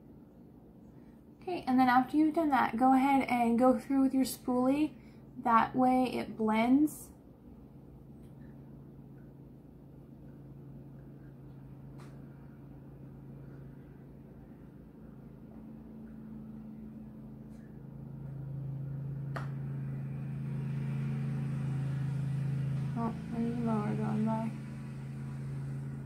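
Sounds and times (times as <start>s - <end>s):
low mechanical motor hum: 0.0s - 26.0s.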